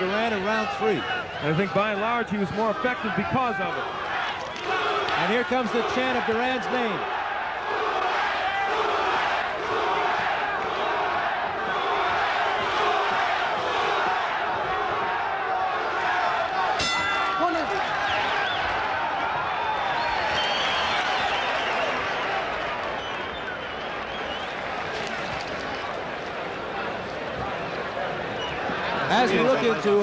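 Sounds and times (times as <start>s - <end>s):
crowd chanting: 2.5s - 23.1s
people shouting: 2.6s - 20.4s
boxing ring bell: 16.8s - 17.9s.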